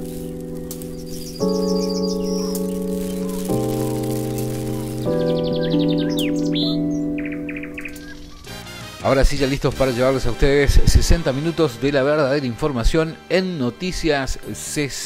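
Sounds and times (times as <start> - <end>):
high bird chirps and trills: 0.0 - 8.6
sustained music chords: 0.0 - 9.0.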